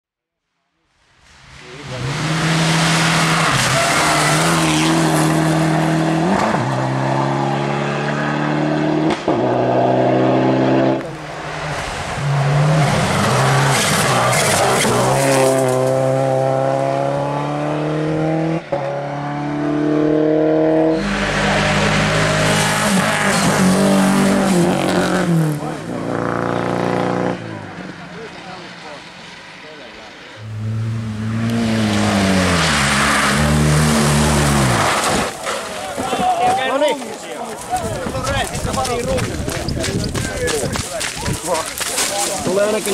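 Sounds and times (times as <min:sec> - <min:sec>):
rally car engines revving: 0:01.2 - 0:42.9.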